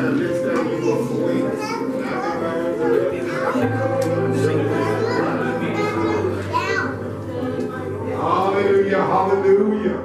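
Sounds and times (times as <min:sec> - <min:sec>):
voices calling out in praise: 0:00.0 - 0:09.7.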